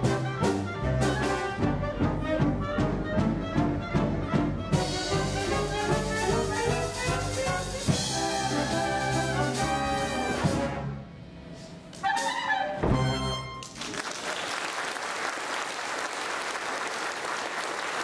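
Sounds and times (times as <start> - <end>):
big band jazz music: 0.0 - 13.8.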